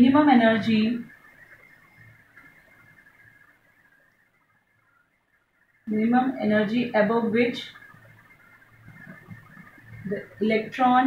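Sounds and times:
marker pen scratching on whiteboard: 0:08.1 - 0:11.0.

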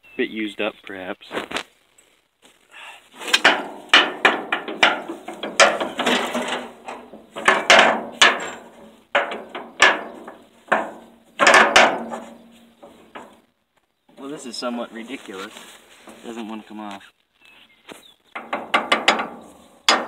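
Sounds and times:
metal clanks: 0:03.2 - 0:13.4, 0:18.4 - 0:20.0.

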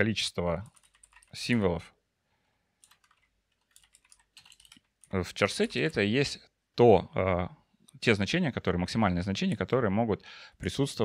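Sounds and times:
faint keyboard typing: 0:00.5 - 0:01.6, 0:02.8 - 0:06.1.

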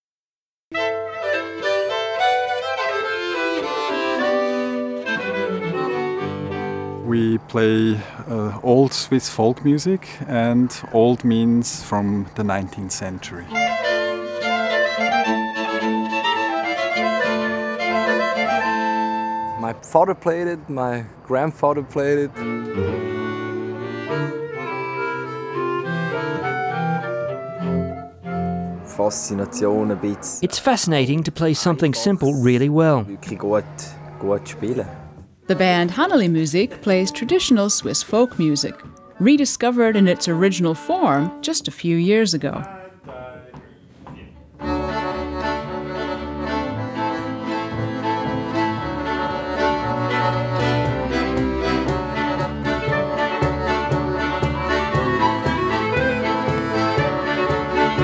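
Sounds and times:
button accordion folk tune: 0:00.7 - 0:07.3, 0:12.4 - 0:19.7, 0:22.3 - 0:42.7, 0:44.6 - 0:58.0
clarinet melody: 0:00.7 - 0:20.7, 0:21.4 - 0:42.7, 0:44.6 - 0:58.0.

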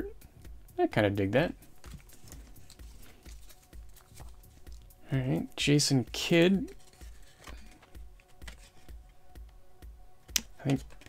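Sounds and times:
trading cards clicking: 0:06.7 - 0:09.0, 0:10.3 - 0:11.0.

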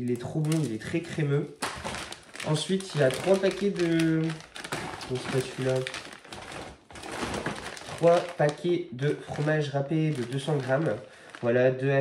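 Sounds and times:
plastic packets crinkling: 0:00.0 - 0:11.7.

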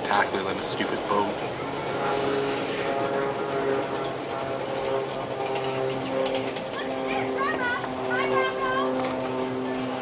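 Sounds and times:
freight train mechanical hum: 0:00.0 - 0:10.0
wheels ticking on rails: 0:00.0 - 0:10.0.

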